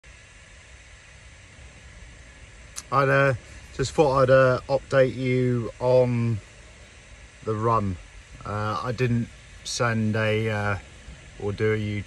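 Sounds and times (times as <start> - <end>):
faint steady hiss: 0.0 - 12.0
low rumble in a van: 0.0 - 12.0.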